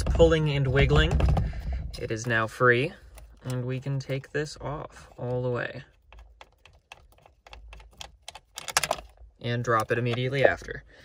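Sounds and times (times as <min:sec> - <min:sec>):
small clicks and rattles: 0:05.8 - 0:10.6.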